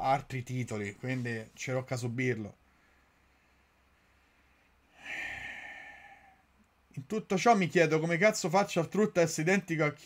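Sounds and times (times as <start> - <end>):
man sighing: 4.9 - 6.4.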